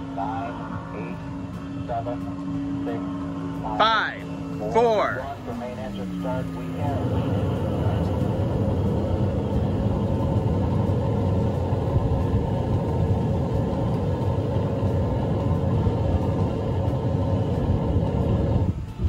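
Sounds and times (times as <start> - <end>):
recorded rocket rumble: 0.0 - 19.0.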